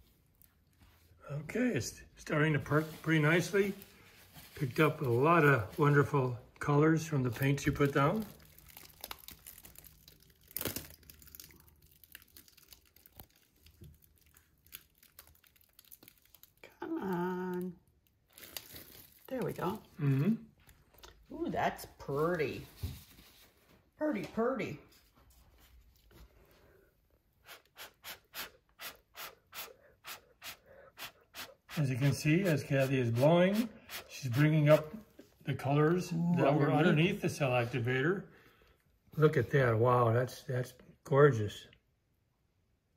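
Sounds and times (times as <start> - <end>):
plastic sheeting crinkling: 2.6 - 6.0, 7.1 - 19.8
person humming: 20.0 - 20.4
breath puffs through straw: 27.4 - 31.8.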